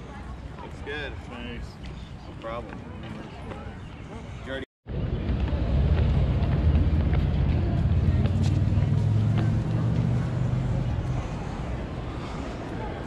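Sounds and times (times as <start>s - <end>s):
vehicle engines rumbling: 0.0s - 13.0s.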